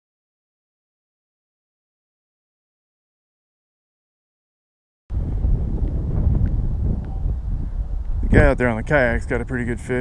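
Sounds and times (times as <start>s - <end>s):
strong wind buffeting microphone: 5.1s - 10.0s.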